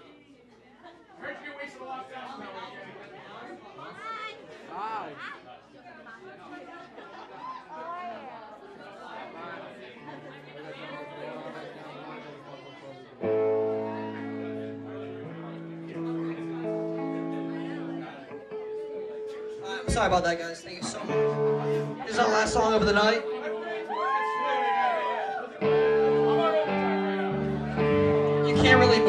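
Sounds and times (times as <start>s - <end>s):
crowd chatter: 0.0s - 29.0s
loud amplified band chord: 20.8s - 23.6s, 25.6s - 29.0s.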